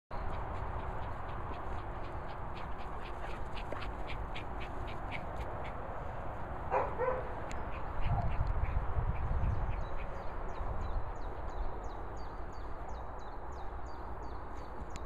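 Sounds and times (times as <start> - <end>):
wind rumble on microphone: 0.1 - 15.0
dog barking: 6.7 - 7.4.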